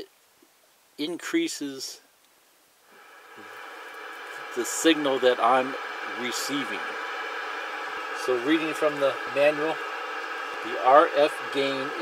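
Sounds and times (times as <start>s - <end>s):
radio static hiss: 2.8s - 12.0s.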